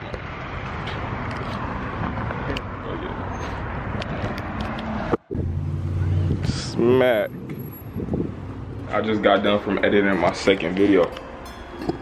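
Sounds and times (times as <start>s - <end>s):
road traffic noise: 0.0s - 12.0s.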